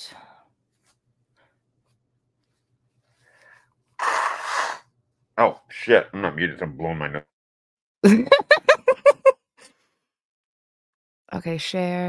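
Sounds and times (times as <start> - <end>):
person blowing nose: 4.0 - 4.9.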